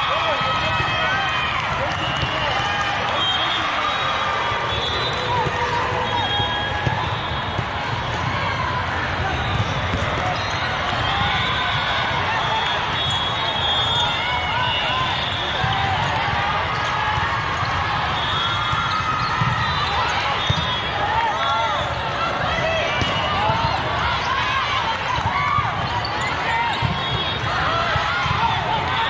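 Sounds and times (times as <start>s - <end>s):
volleyballs struck and bounced: 5.0s - 12.3s, 15.0s - 29.0s
sneakers squeaking on court floor: 9.3s - 11.5s, 15.1s - 20.9s, 25.8s - 27.4s.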